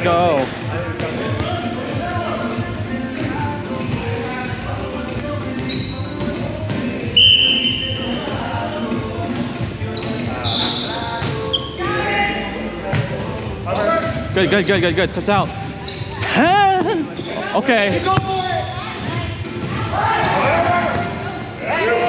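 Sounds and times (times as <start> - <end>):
players' voices in a gym: 0.0 - 22.0.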